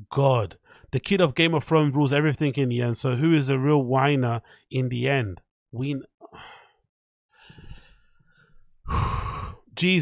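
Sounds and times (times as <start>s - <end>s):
man sighing: 8.9s - 9.7s.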